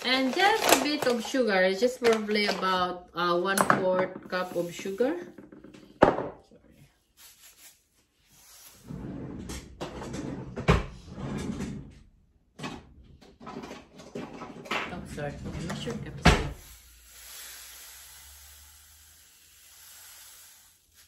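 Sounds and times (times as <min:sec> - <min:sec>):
drawer being rummaged through: 0:00.0 - 0:02.6.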